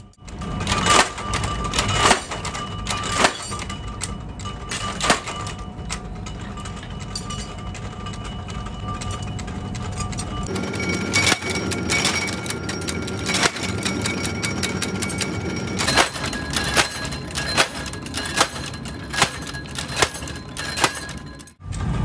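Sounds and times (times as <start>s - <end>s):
machine hum: 0.0s - 21.6s
sharp metal clanks: 0.0s - 21.6s.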